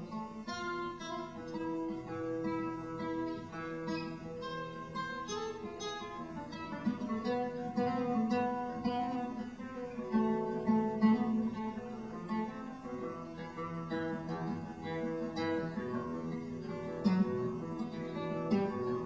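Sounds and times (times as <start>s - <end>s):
solo acoustic guitar: 0.0s - 19.0s.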